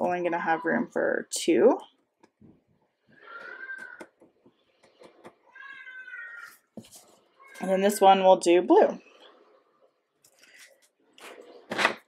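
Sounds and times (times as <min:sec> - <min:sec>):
cat meowing: 0:03.2 - 0:04.0, 0:05.4 - 0:06.7.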